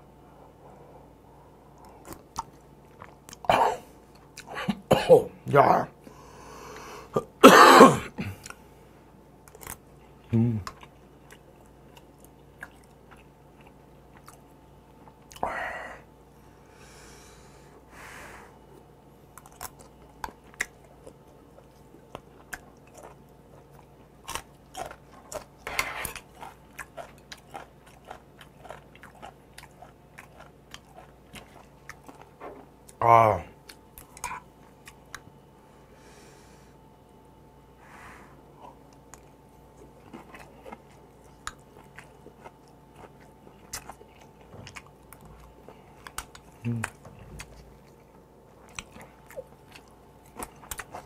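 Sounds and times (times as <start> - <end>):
wet chewing: 1.7 - 4.6, 9.4 - 15.4, 19.2 - 33.0, 33.6 - 35.3, 38.5 - 51.0.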